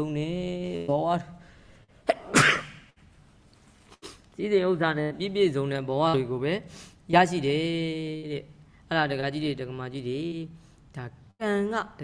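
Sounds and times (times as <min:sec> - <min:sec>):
man sneezing: 0:02.0 - 0:02.9.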